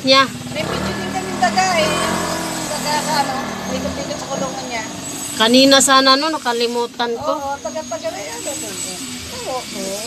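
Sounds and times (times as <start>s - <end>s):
low engine-like hum: 0.0s - 10.0s.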